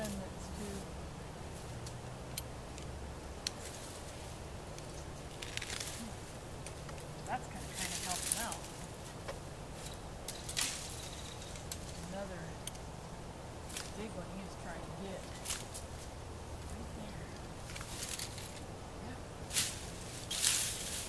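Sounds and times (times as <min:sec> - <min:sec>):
branches rustling: 0:00.0 - 0:21.0.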